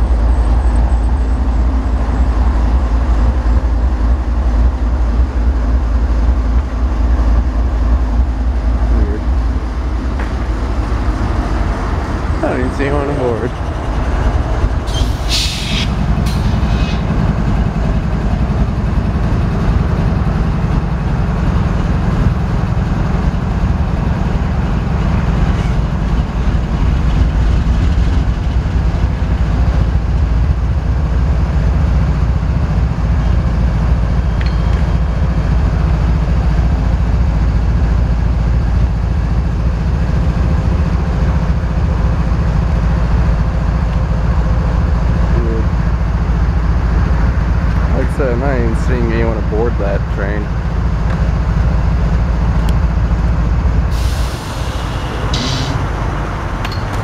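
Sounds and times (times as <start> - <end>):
diesel locomotive engine droning: 0.0 - 57.0.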